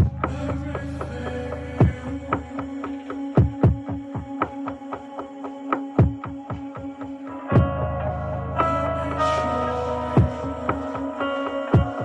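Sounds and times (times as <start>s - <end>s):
deep kick drums: 0.0s - 2.6s, 3.4s - 4.4s, 7.5s - 7.8s, 10.2s - 10.6s
held low synth note: 7.6s - 11.2s.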